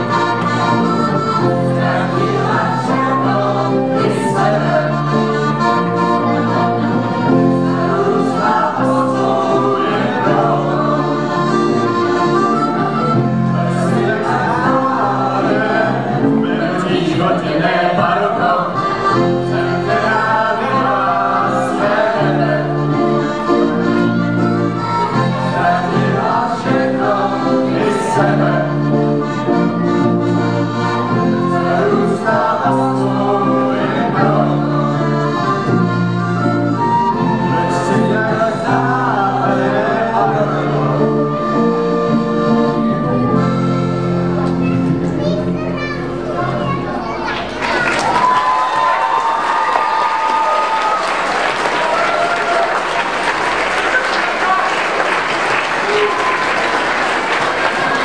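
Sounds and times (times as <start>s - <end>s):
group singing: 0.0s - 43.7s
accordion chords: 0.0s - 47.8s, 51.2s - 58.0s.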